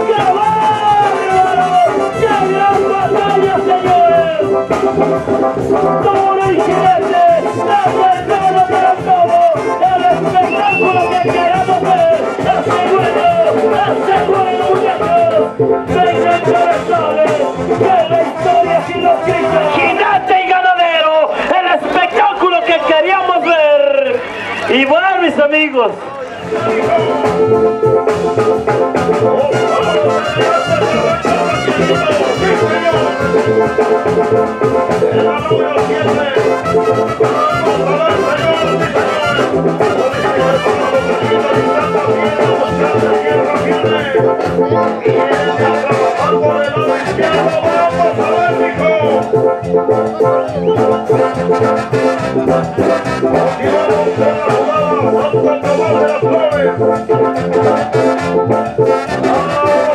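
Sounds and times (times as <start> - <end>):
brass band music: 0.0 - 59.9.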